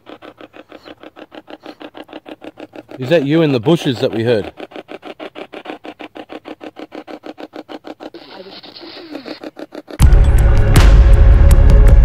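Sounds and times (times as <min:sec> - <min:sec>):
choppy bursts of radio static: 0:08.1 - 0:09.4.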